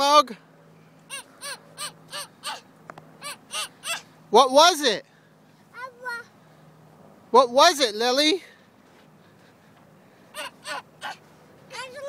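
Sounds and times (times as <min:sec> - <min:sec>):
low outdoor background: 0:00.0 - 0:12.0
bird calling: 0:00.8 - 0:05.6, 0:09.0 - 0:11.4
small child's voice: 0:05.7 - 0:06.3, 0:11.7 - 0:12.0.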